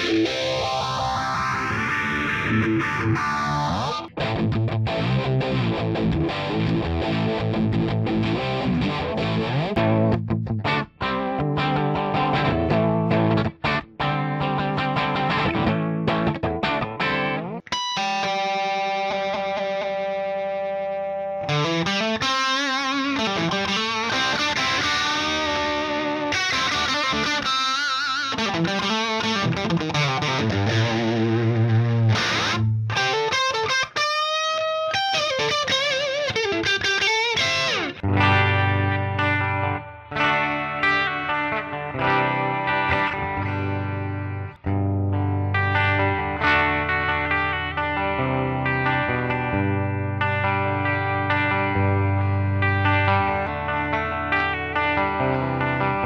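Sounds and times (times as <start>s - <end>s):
electric guitar playing: 0.0s - 56.0s.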